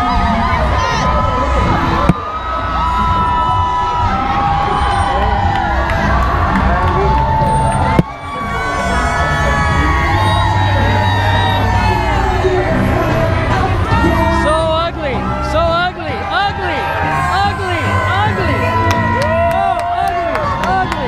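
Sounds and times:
crowd cheering and whooping: 0.0 - 21.0
steady low rumble: 0.0 - 21.0.

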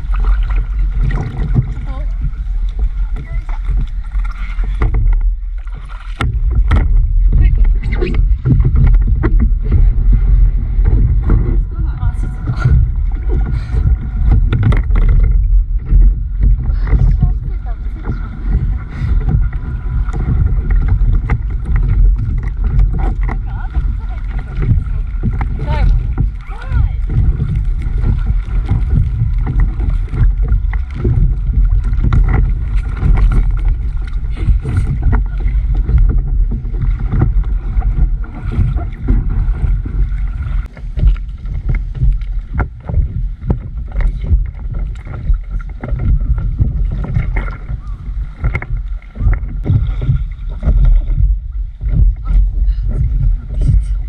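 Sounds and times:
low rumble on microphone: 0.0 - 54.0
river water lapping against board: 0.0 - 54.0.

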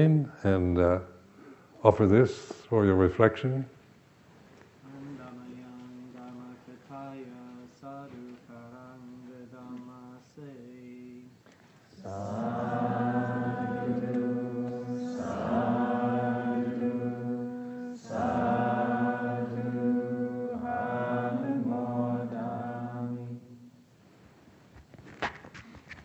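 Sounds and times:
voices chanting in unison: 11.9 - 23.7.

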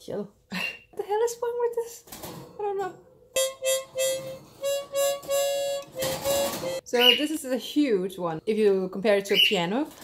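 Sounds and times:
harmonica notes: 3.4 - 7.2.

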